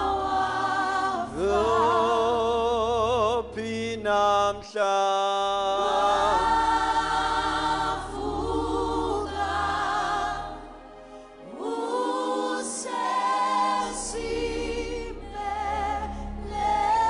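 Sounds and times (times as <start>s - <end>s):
low accompanying tone: 0.0s - 4.7s, 5.4s - 17.0s
gospel worship singing: 0.0s - 17.0s.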